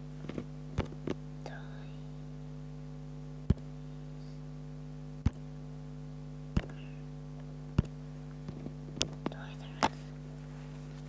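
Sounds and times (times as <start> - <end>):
low electrical hum: 0.0 - 11.0
sharp tap: 6.6 - 6.8
faint whisper-like sound: 9.3 - 10.8.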